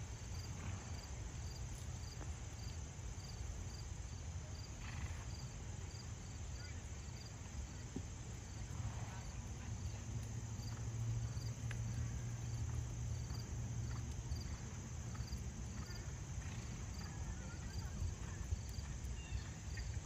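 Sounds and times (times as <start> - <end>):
insect chirping: 0.3 - 7.7, 10.6 - 20.0.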